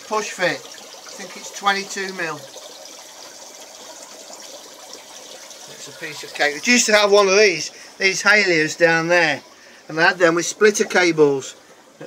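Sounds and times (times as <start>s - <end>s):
water trickling and bubbling: 0.0s - 12.0s.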